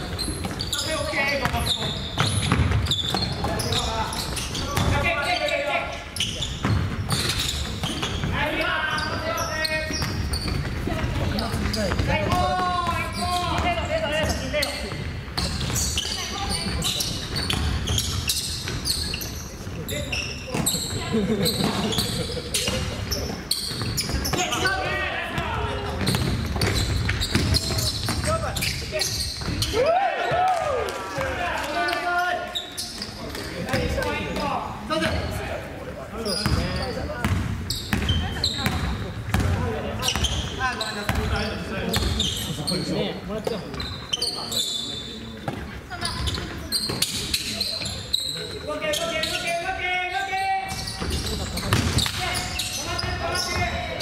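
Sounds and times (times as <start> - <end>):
basketball bouncing on wooden floor: 1.4 - 3.6, 6.6 - 8.3, 26.0 - 28.3, 36.4 - 40.4, 41.9 - 42.2.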